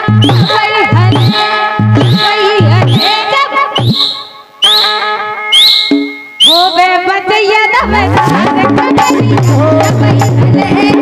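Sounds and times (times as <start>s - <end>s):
drum strokes: 0.0s - 5.1s, 5.7s - 6.9s
harmonium notes: 0.0s - 9.0s.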